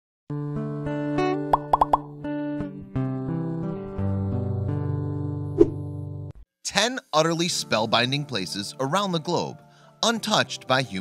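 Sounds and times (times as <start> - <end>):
rising plop sound effects: 1.4 - 2.1.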